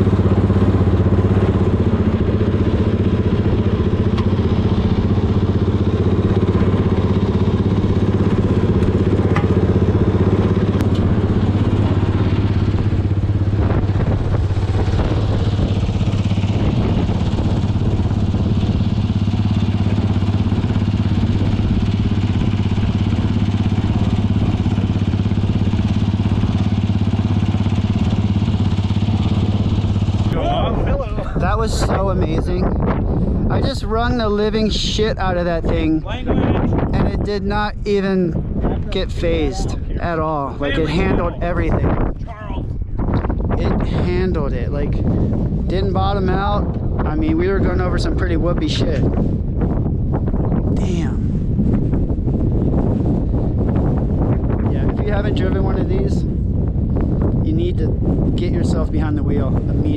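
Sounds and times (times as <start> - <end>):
buggy engine idling: 0.0 - 59.9.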